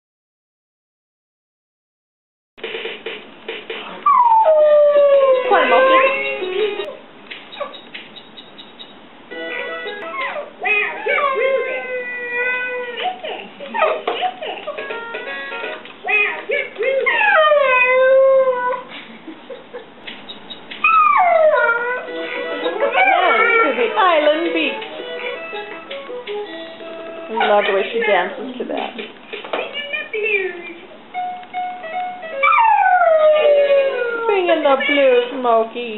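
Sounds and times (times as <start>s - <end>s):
dog howling: 4.0s - 6.9s, 9.5s - 14.6s, 16.1s - 18.9s, 20.8s - 24.7s, 32.4s - 35.2s
music toy tune: 5.4s - 6.9s, 9.3s - 10.4s, 14.8s - 15.8s, 22.0s - 27.6s, 31.1s - 33.9s.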